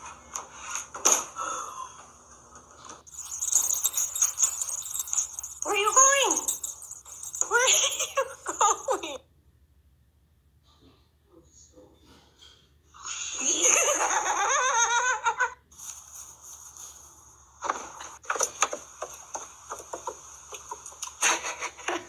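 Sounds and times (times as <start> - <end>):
irregular clicks and taps: 17.7 - 21.2.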